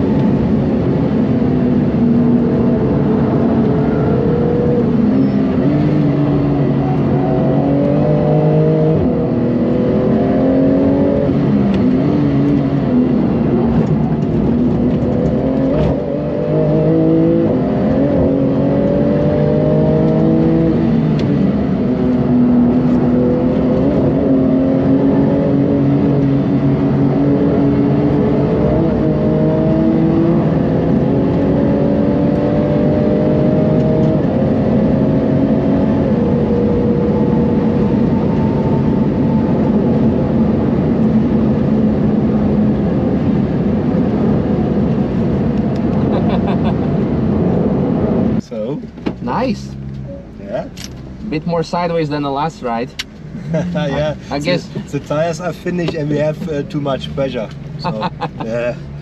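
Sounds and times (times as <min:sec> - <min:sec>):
car engine accelerating hard: 0:00.0 - 0:59.0.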